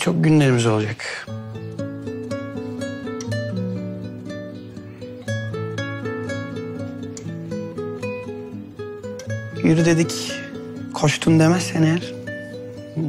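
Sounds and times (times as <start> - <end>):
plucked acoustic guitar melody: 0.0 - 13.0.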